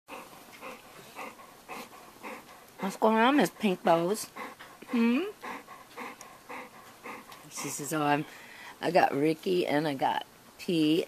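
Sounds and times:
small dog breathing: 0.1s - 8.8s.

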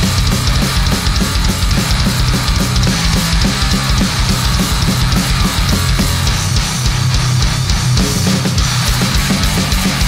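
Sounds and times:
bass guitar: 0.0s - 10.0s
distorted electric guitars: 0.0s - 10.0s
driving drum kit: 0.0s - 10.0s.

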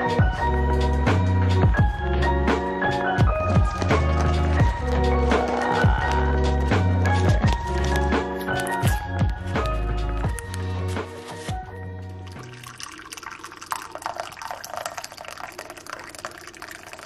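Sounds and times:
background music with bass: 0.0s - 12.6s
water pouring into teacup: 12.1s - 17.0s.

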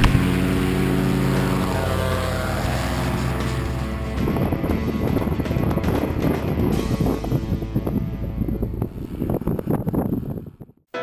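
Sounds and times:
engine and propeller running: 0.0s - 10.2s
wind on microphone: 0.0s - 10.9s.

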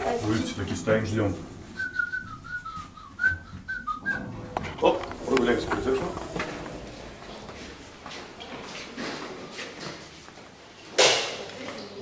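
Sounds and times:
person whistling a tune: 1.8s - 4.3s.

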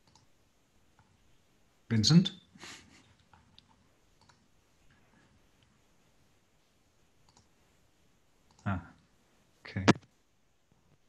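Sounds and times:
faint clicks: 0.0s - 0.3s, 3.1s - 4.4s, 7.2s - 7.5s, 8.4s - 8.8s.

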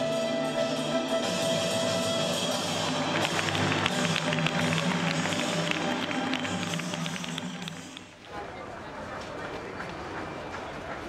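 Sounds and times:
fast sharp percussion taps: 2.8s - 8.1s.

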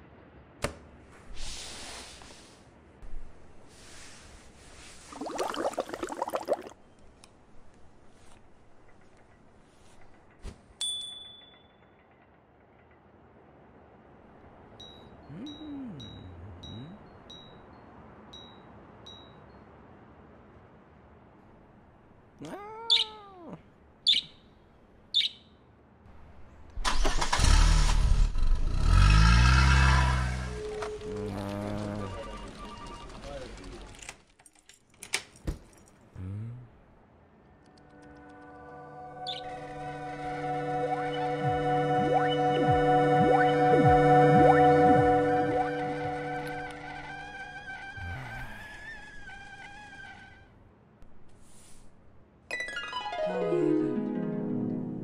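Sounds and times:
small bird chirping: 22.4s - 24.5s, 25.1s - 25.6s, 39.2s - 39.6s
car engine starting and revving: 26.8s - 32.2s
high wavering musical note: 39.8s - 46.9s.

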